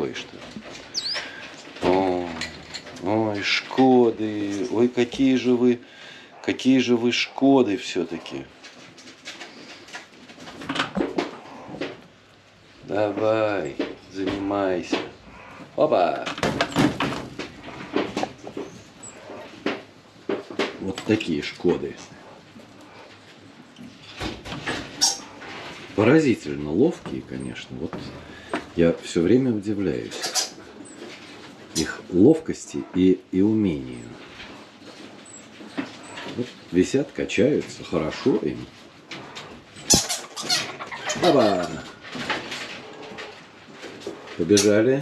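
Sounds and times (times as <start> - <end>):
clicks and rattles on wire: 0.0 - 5.3
plastic bucket and rope rattling: 12.8 - 22.2, 23.9 - 32.3, 33.6 - 45.0.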